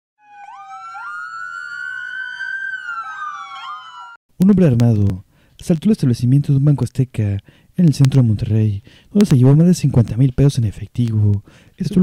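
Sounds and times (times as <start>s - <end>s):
siren-like electronic tones: 0.2s - 4.2s.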